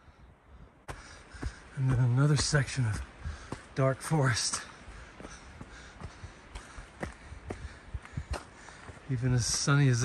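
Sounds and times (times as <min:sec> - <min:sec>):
footsteps on rocky trail: 0:00.9 - 0:10.0.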